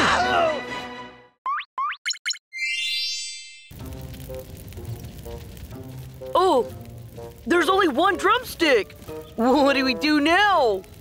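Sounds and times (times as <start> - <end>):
soft background music: 3.8 - 11.0.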